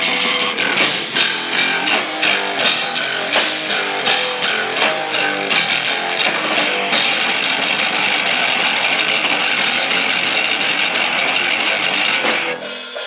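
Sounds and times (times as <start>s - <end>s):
loud live band playing: 0.0s - 13.0s.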